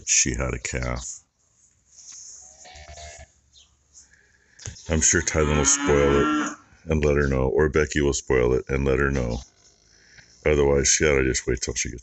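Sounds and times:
cattle mooing softly: 5.2 - 6.7.

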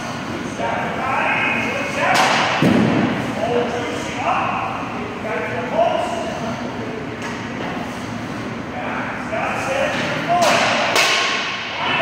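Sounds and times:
hockey stick striking puck: 2.1 - 2.9, 9.9 - 11.6.

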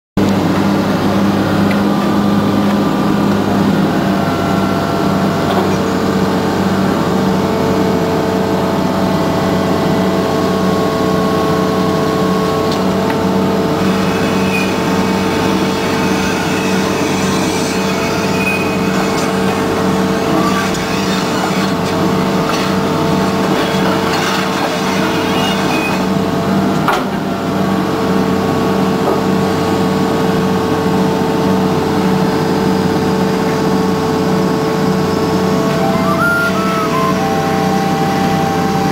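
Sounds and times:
diesel engine running under load: 0.2 - 38.9.

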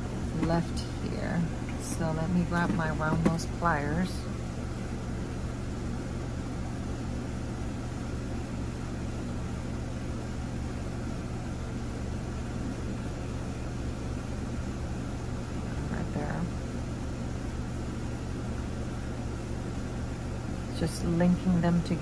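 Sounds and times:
low hum with hiss: 0.0 - 22.0.

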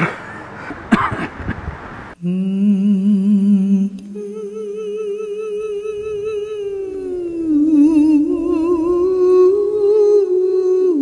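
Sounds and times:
person humming with vibrato: 2.2 - 11.0.

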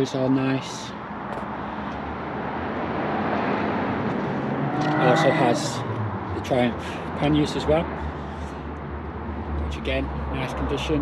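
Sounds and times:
motor vehicle passing by: 2.0 - 9.5.

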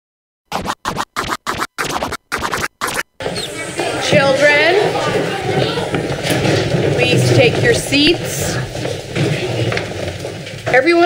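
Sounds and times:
record scratching: 0.5 - 5.8
continuous background sound: 0.5 - 11.0.

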